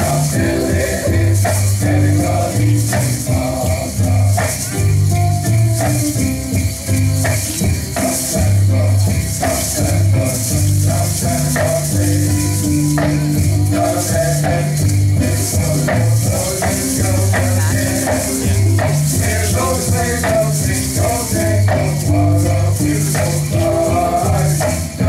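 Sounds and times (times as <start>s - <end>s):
gourd rattles shaken: 0.0s - 25.0s
music with steady bass line: 0.0s - 25.0s.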